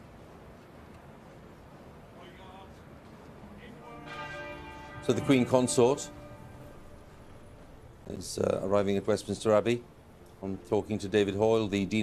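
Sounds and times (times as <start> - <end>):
faint church bell tolling: 3.8 - 9.6.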